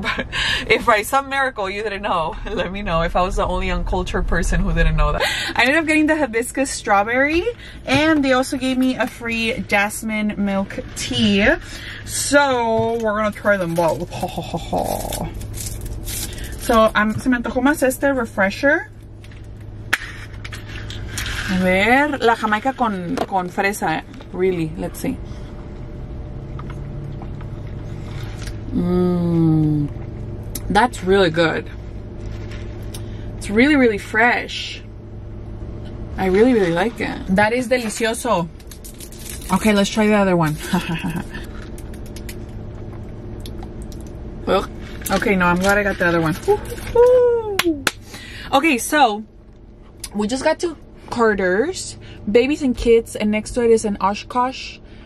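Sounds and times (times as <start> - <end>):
paper straw wrapper tearing: 13.7 - 16.8, 38.6 - 39.6.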